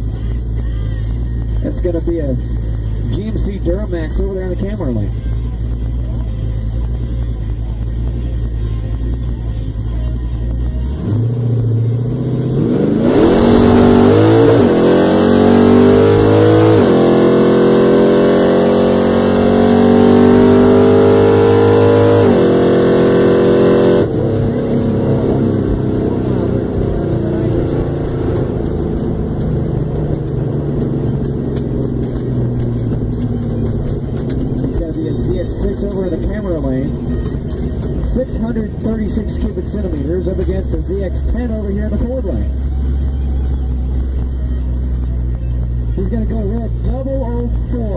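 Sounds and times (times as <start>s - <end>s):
car engine revving and accelerating: 0.0s - 47.9s.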